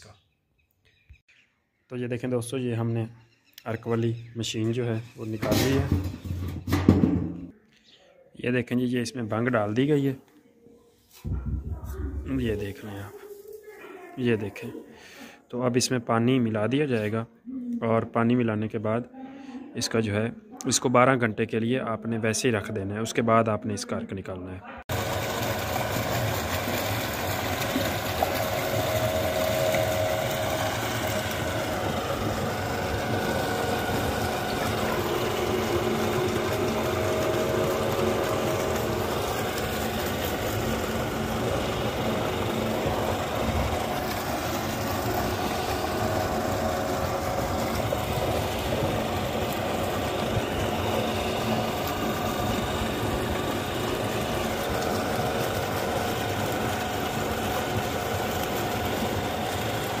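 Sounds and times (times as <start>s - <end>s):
water pump motor humming: 5.0s - 7.5s, 24.9s - 60.0s.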